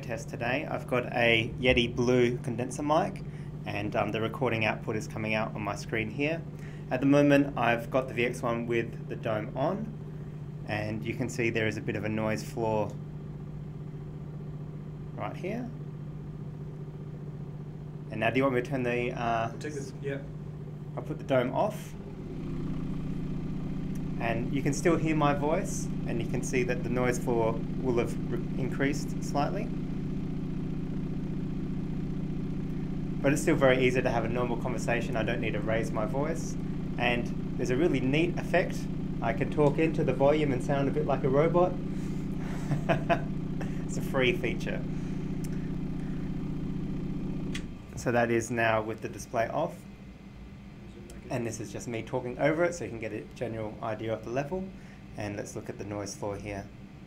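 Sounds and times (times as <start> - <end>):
display humming with air rushing: 0.0 - 57.0.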